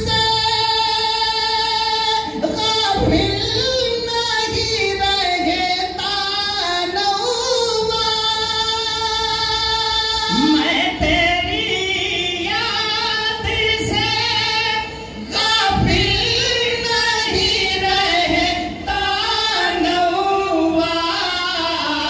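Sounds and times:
men singing devotional song over pa: 0.0s - 22.0s.

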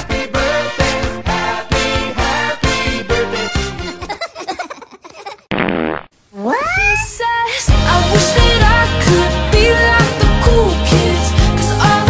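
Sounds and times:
fart sound effect: 5.5s - 6.1s.

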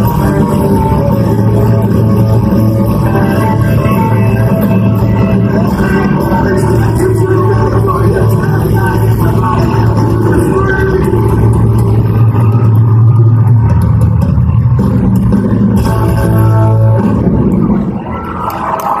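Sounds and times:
live country band: 0.0s - 19.0s.

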